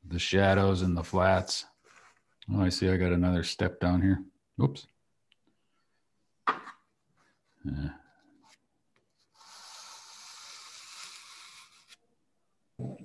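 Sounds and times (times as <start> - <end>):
hand rubbing across paper: 9.2 - 12.0.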